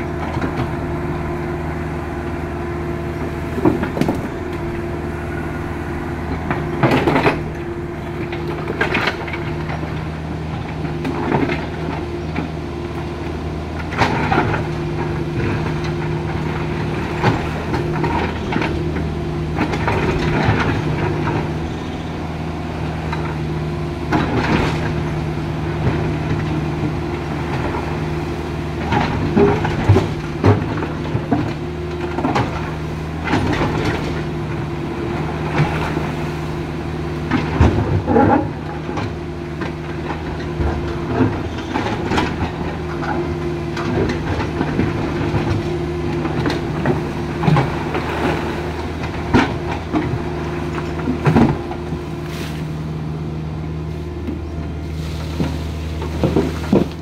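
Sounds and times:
diesel engine running: 0:00.0 - 0:57.0.

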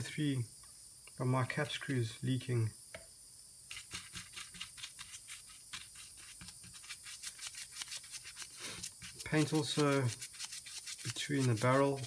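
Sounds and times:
bristle brush scrubbing metal: 0:03.7 - 0:12.0.

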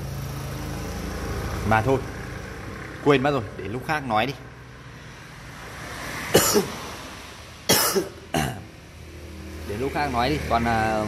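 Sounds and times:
person coughing: 0:06.4 - 0:06.8, 0:07.7 - 0:08.7.

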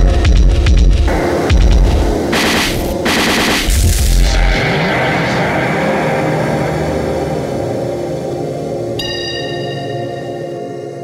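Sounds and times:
heavy bass: 0:00.0 - 0:09.0
droning electronic chord: 0:00.0 - 0:11.0.

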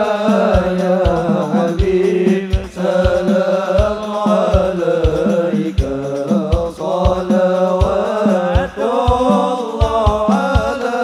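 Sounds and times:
low drum beat: 0:00.0 - 0:11.0
men chanting in unison: 0:00.0 - 0:11.0.

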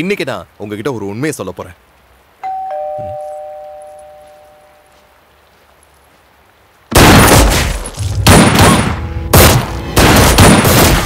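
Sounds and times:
two-tone doorbell chime: 0:02.4 - 0:05.0.

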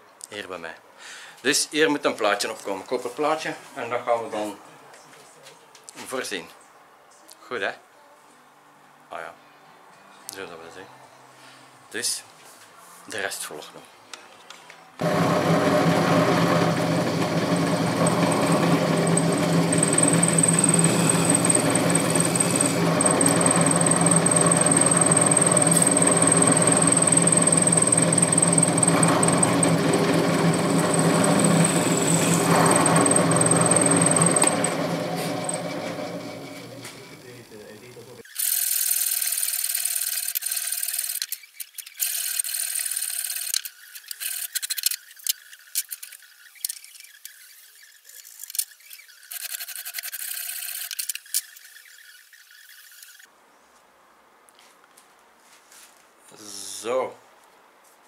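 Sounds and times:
drill press motor whining: 0:15.0 - 0:37.5.

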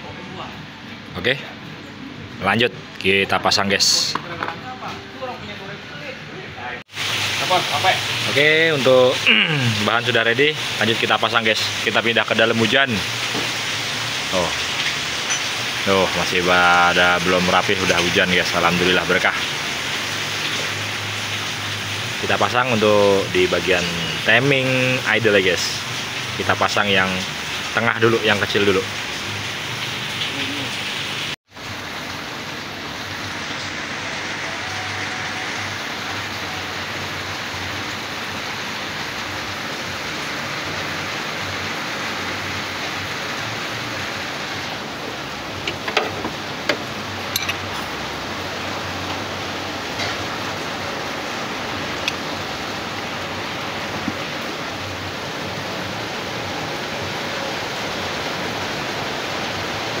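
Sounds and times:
steady rain: 0:00.0 - 1:00.0.

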